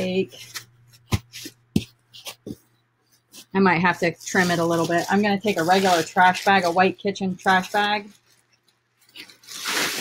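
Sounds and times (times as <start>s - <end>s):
knocks and rustles of handling: 0.2s - 3.6s.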